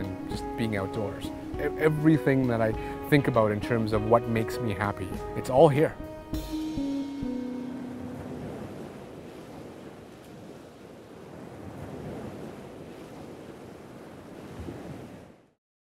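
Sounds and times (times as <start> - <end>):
waves breaking on beach: 7.3 - 15.6.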